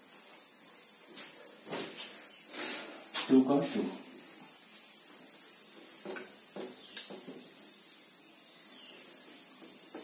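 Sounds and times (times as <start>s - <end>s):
high-pitched insect-like trill: 0.0s - 10.0s.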